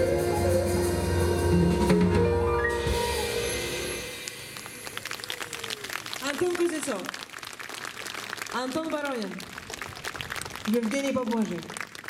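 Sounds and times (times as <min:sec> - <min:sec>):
audience clapping: 0:04.2 - 0:12.0.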